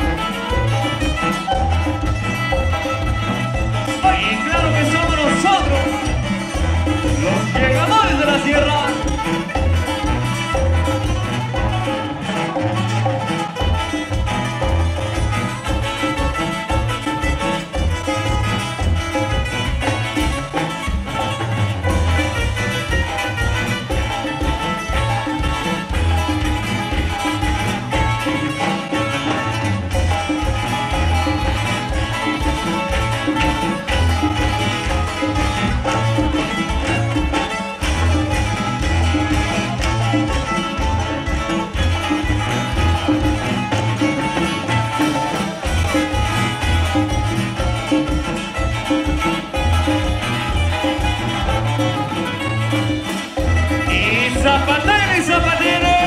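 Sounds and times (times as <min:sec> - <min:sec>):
congas: 0:00.0 - 0:56.0
sousaphone bass line: 0:00.0 - 0:56.0
strummed acoustic guitars: 0:00.0 - 0:56.0.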